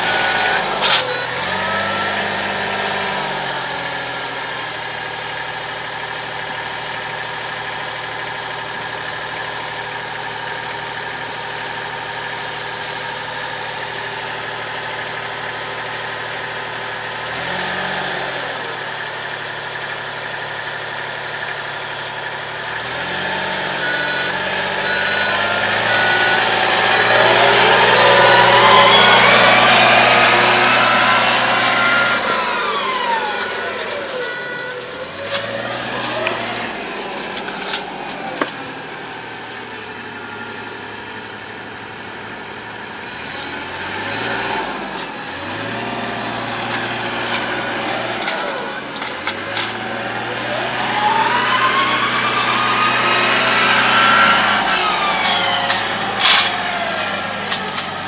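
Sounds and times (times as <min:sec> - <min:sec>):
rising engine whine: 0:00.0 - 0:05.7, 0:22.2 - 0:58.0
loader diesel engine idling and revving: 0:00.0 - 0:58.0.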